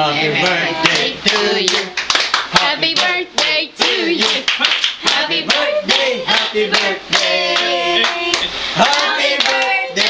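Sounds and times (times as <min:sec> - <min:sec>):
people singing: 0:00.0 - 0:10.0
people clapping: 0:00.4 - 0:10.0.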